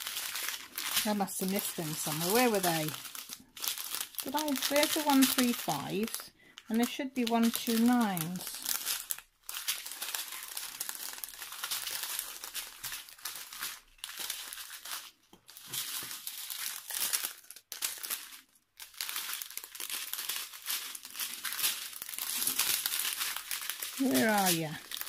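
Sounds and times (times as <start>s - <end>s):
plastic bags crinkling: 0.0s - 25.0s.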